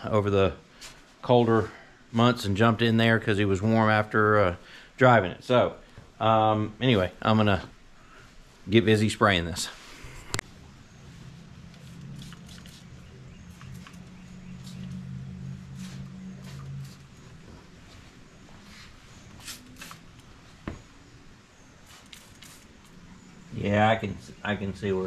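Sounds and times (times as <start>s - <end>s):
sprayer pump humming: 10.0s - 25.0s.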